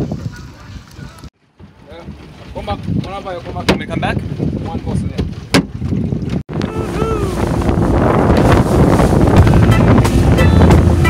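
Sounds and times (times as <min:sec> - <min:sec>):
motorboat on choppy water: 0:00.0 - 0:11.0
wind rumbling on microphone: 0:00.0 - 0:11.0.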